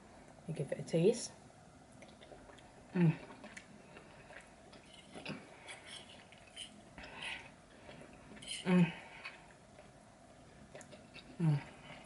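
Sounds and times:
mouth clicks and smacks: 1.9 - 7.5
woman chewing food: 1.9 - 12.0
woman humming mm: 2.9 - 3.4, 8.4 - 9.1, 11.3 - 11.9.

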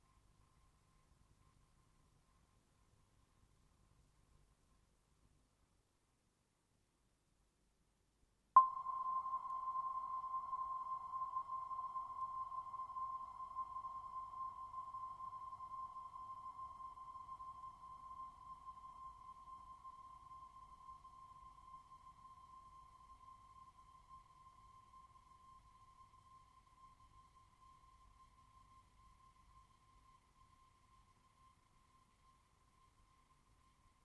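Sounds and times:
high ringing tone: 8.6 - 26.9.

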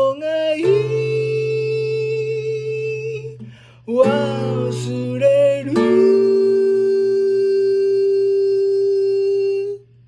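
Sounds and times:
man singing long steady note: 0.0 - 9.8
acoustic guitar: 0.0 - 10.0.

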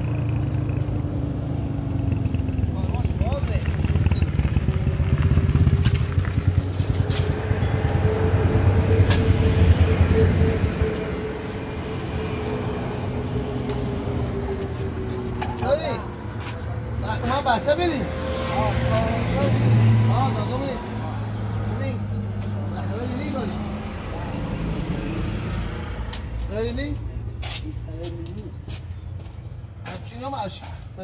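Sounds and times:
motor vehicle engine hum: 0.0 - 31.0
men talking: 2.6 - 3.8, 12.2 - 31.0.

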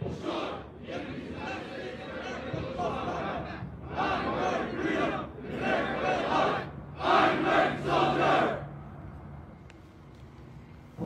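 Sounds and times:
soldiers shouting in unison: 0.1 - 8.6.

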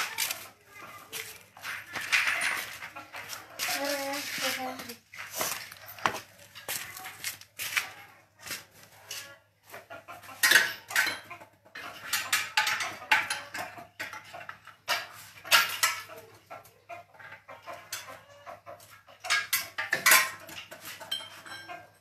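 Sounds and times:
metal tools clinking and clattering: 0.0 - 7.4, 10.3 - 16.2, 19.1 - 22.0.

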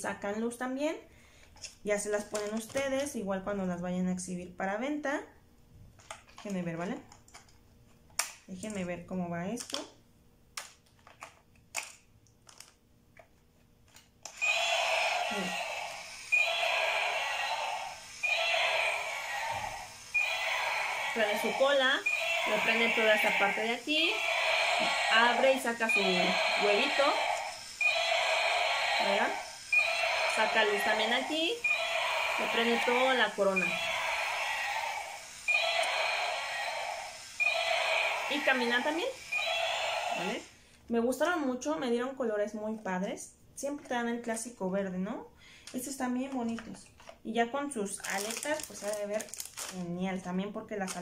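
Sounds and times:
toy dinosaur roar through speaker: 14.4 - 40.5.

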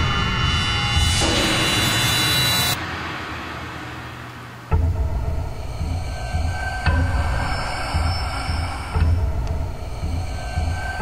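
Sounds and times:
low rumbling drone: 0.0 - 11.0.

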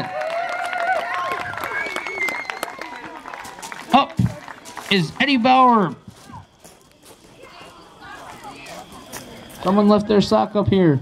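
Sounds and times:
faint crowd chatter: 1.2 - 11.0
footsteps on concrete and gravel: 3.3 - 10.0.

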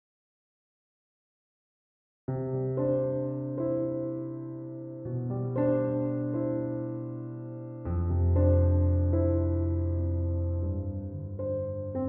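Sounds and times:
electric piano music: 2.3 - 12.0.

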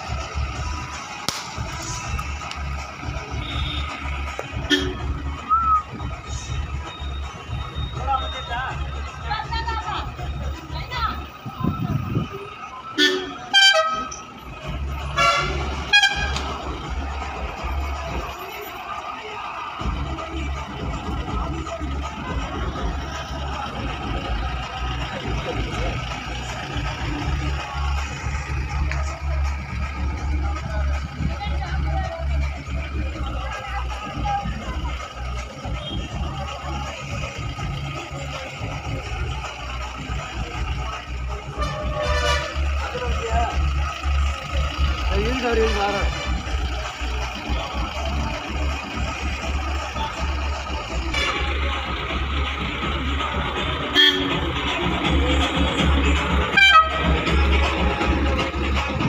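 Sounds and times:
faint voices: 0.0 - 59.0
minibus horn blasts: 3.3 - 5.2, 13.0 - 14.3, 15.1 - 16.6, 41.5 - 42.8, 51.1 - 51.6, 53.9 - 54.5, 56.5 - 57.4
steady low rumble: 19.6 - 59.0.

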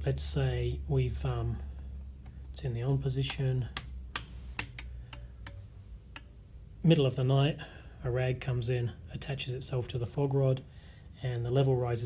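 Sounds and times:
toggle switches clicking: 3.2 - 6.4.

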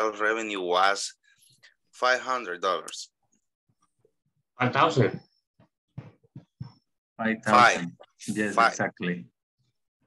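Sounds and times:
man speaking: 7.2 - 9.4.

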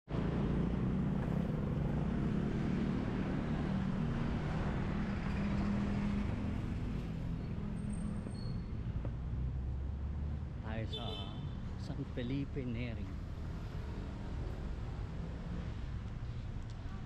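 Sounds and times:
motor vehicle engine hum: 0.1 - 10.6.

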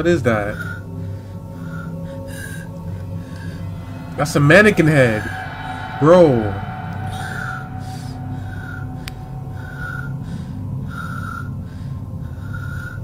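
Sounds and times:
low eerie drone: 0.0 - 13.0
soft breath-like swells: 0.0 - 13.0.

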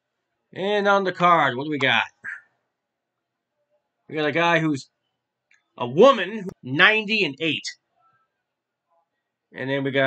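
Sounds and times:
man speaking: 0.5 - 2.6, 4.1 - 4.9, 5.8 - 7.8, 9.5 - 10.0.

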